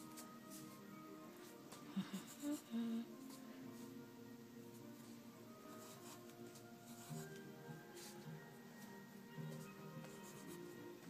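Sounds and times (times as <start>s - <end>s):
faint background music: 0.0s - 11.0s
person humming: 1.8s - 3.4s.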